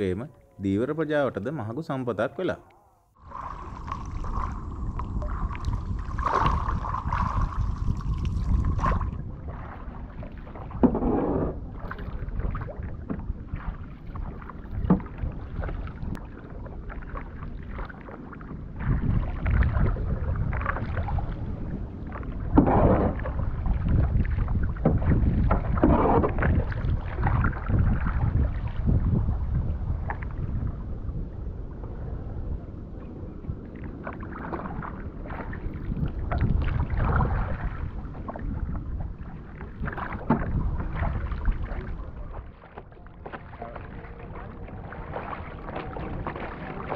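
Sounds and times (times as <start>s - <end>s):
water sloshing along hull: 0.0s - 46.9s
swooshing splashes: 3.2s - 10.9s, 34.0s - 46.9s
kayak paddle strokes: 3.2s - 29.0s, 33.9s - 46.9s
wind rumble on microphone: 3.2s - 46.9s.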